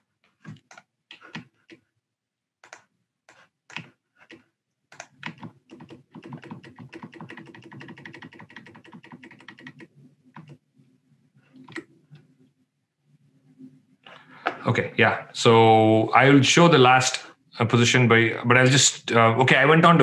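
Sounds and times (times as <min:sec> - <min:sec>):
typing on computer keyboard: 0:00.4 - 0:01.8, 0:02.6 - 0:02.9, 0:03.7 - 0:10.6.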